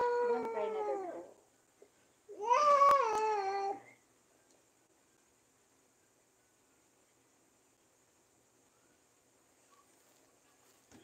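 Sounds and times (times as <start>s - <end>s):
baby crying: 0.0s - 1.3s, 2.3s - 4.0s.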